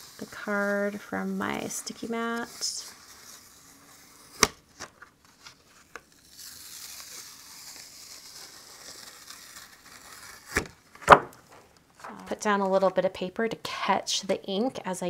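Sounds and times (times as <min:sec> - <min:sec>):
card peeling off sticky mat: 0:02.4 - 0:11.6.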